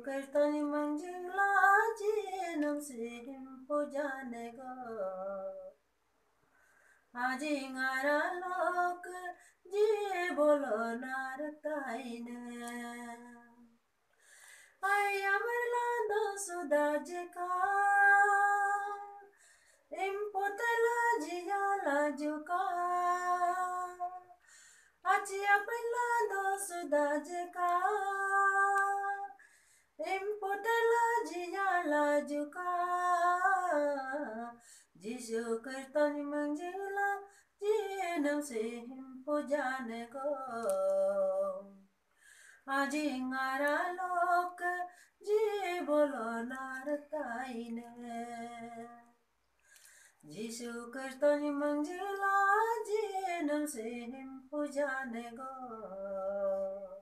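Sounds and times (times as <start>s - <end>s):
woman singing unaccompanied: 0.0s - 5.8s, 7.1s - 13.8s, 14.8s - 24.4s, 25.0s - 29.4s, 30.0s - 41.9s, 42.6s - 49.2s, 50.2s - 57.0s.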